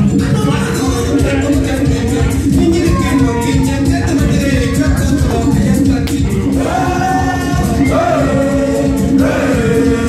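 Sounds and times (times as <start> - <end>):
busy steady rhythm: 0.0 - 10.0
group of voices singing: 1.0 - 10.0.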